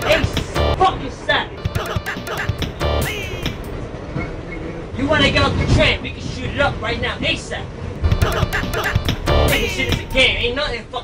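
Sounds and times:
subway wheels rumbling on rails: 0:00.0 - 0:11.0.

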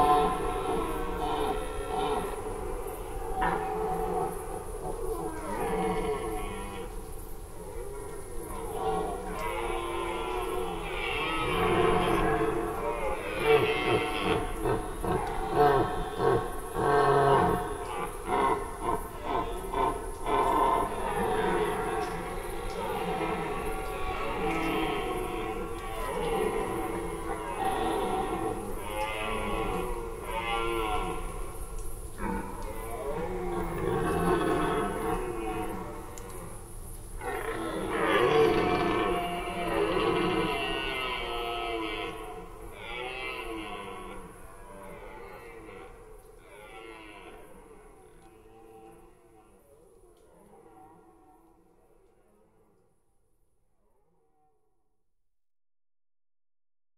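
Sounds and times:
deer stags roaring: 0:07.7 - 0:51.6.

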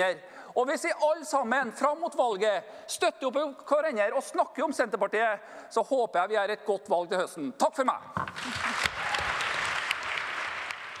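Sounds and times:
audience applauding: 0:08.4 - 0:11.0.

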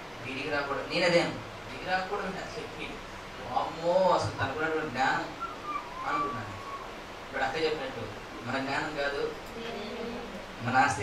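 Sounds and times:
person whistling: 0:05.4 - 0:06.9.

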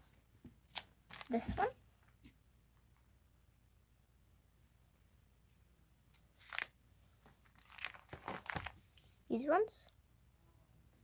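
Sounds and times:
plastic binder pages crinkling: 0:00.6 - 0:01.8, 0:06.1 - 0:09.0.

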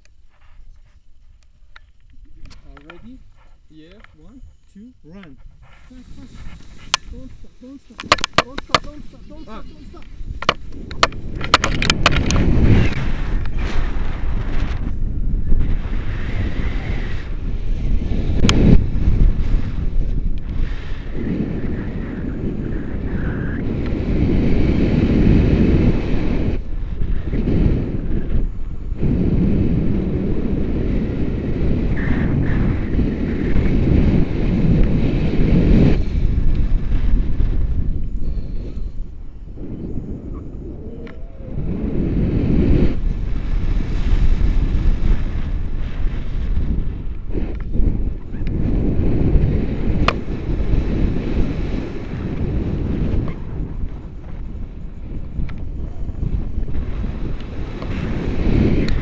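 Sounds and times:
wind buffeting microphone: 0:00.0 - 0:59.0
sharp click: 0:08.0 - 0:09.0.

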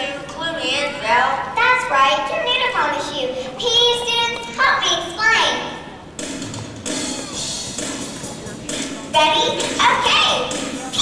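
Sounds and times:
child singing over sound system: 0:09.2 - 0:11.0.

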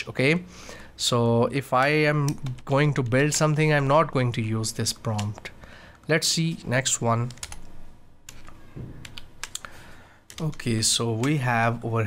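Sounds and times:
keyboard keys clicking: 0:07.2 - 0:07.7, 0:08.3 - 0:09.7.

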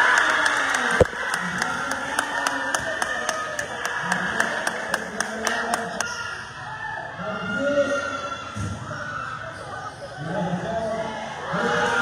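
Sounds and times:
spectators clapping in rhythm: 0:00.0 - 0:06.1
crowd noise: 0:00.0 - 0:12.0.

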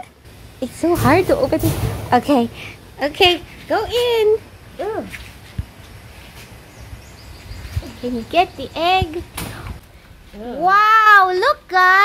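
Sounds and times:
rustling against wire mesh: 0:00.3 - 0:10.5.

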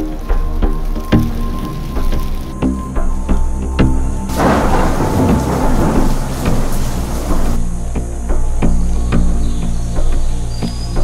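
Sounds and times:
low background music: 0:00.0 - 0:11.0
thunder crash rumbling: 0:04.3 - 0:07.6.

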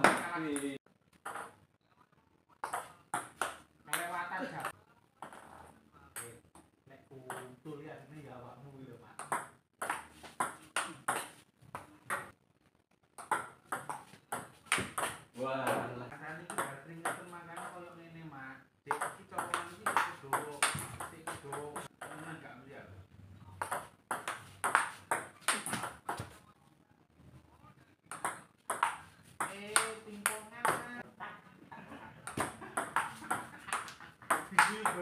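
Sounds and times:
ping pong ball bouncing on table: 0:00.0 - 0:01.6, 0:02.6 - 0:05.5, 0:07.3 - 0:07.6, 0:09.2 - 0:12.4, 0:13.2 - 0:15.8, 0:16.4 - 0:17.8, 0:18.9 - 0:22.3, 0:23.6 - 0:26.3, 0:28.1 - 0:31.0, 0:32.2 - 0:35.0
ping pong ball clicking off paddles: 0:00.0 - 0:01.6, 0:09.2 - 0:12.3, 0:13.2 - 0:15.3, 0:23.6 - 0:26.3, 0:28.1 - 0:30.9, 0:32.2 - 0:35.0.

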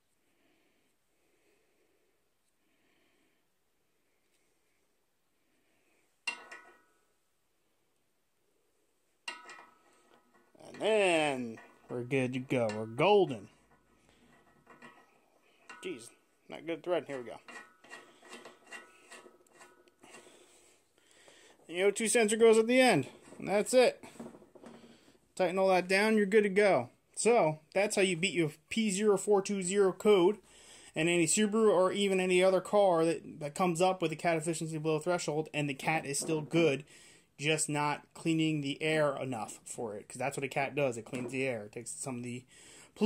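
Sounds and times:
soft handling noise: 0:09.1 - 0:25.4, 0:40.8 - 0:42.4
faint metallic clicks and scrapes: 0:09.2 - 0:16.2, 0:16.9 - 0:21.7.

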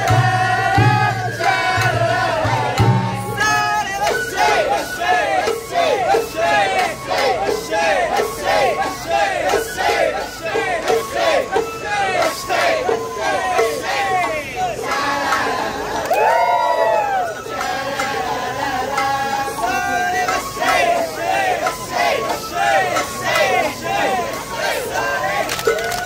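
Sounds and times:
crowd chanting in unison: 0:00.0 - 0:25.8.

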